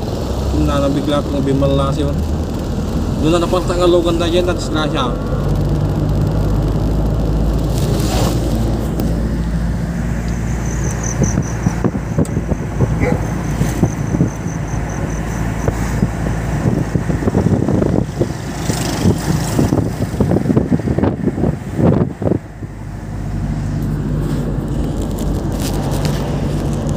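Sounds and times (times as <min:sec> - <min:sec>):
road noise: 0:00.0 - 0:26.9
vehicle engine running: 0:00.0 - 0:26.9
wind gusts on microphone: 0:02.2 - 0:26.9.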